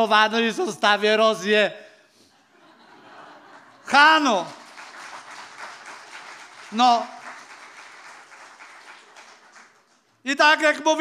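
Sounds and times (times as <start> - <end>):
audience applause: 3.5 - 10.1.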